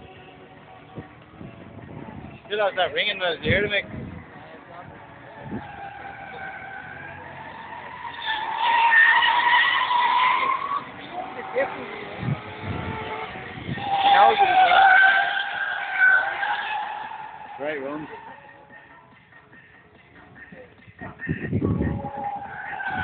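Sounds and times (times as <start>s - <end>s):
tyres squealing: 5.3s - 18.7s, 22.0s - 23.0s
car engine revving high: 5.4s - 18.2s.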